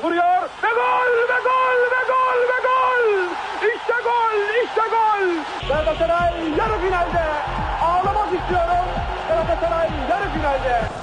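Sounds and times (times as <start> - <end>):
man commentating: 0.0 - 11.0
noisy background: 0.0 - 11.0
music: 5.6 - 11.0.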